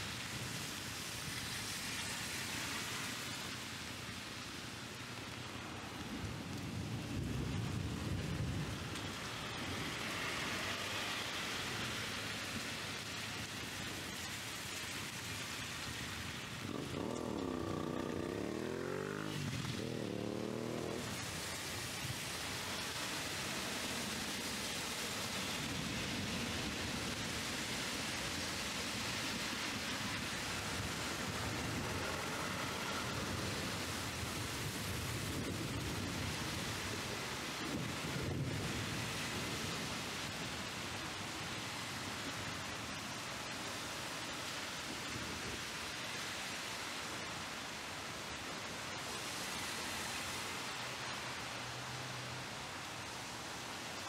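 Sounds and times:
car passing on wet road: 0.0 - 54.0
heavy rain hissing: 0.0 - 54.0.

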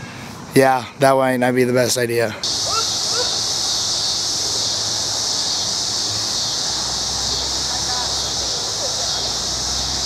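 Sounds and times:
insects buzzing drone: 2.4 - 10.0.

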